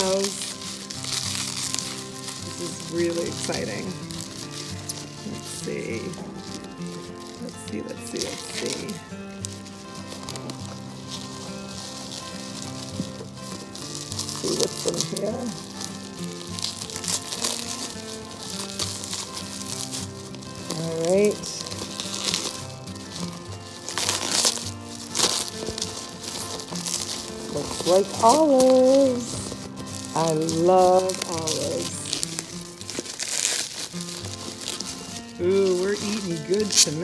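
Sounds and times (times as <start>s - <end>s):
background music with held notes: 0.0s - 37.0s
bubble wrap crinkling: 0.0s - 37.0s.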